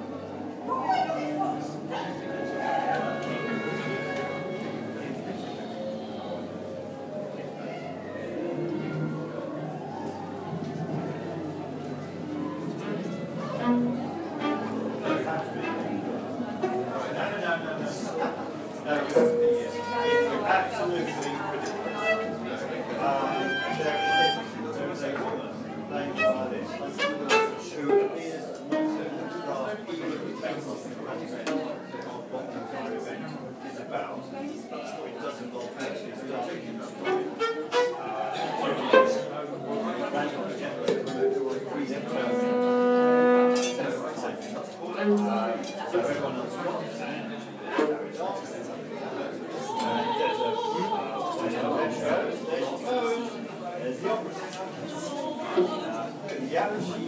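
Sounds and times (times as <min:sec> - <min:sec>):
people talking: 0:00.0 - 0:57.0
live acoustic music: 0:00.8 - 0:06.1
wind instrument long note: 0:00.9 - 0:06.7, 0:21.8 - 0:24.8, 0:42.0 - 0:43.7.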